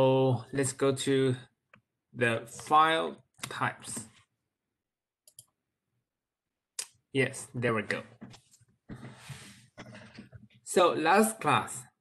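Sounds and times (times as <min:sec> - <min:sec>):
computer mouse clicks: 0:05.2 - 0:05.6.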